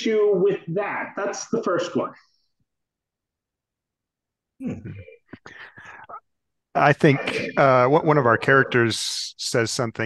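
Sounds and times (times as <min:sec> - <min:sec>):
person mumbling and whispering: 0:04.6 - 0:06.2, 0:07.0 - 0:09.2.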